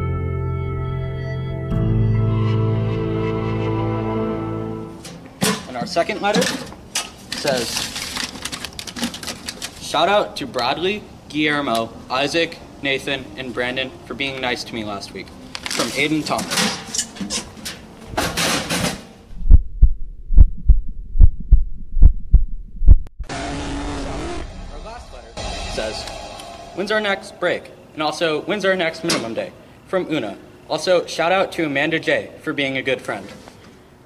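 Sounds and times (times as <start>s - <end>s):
steady hiss with low hum: 5.0s - 19.2s, 26.8s - 34.0s
paper rustling: 7.2s - 9.8s, 15.5s - 16.3s
heartbeat thumps: 19.3s - 23.3s.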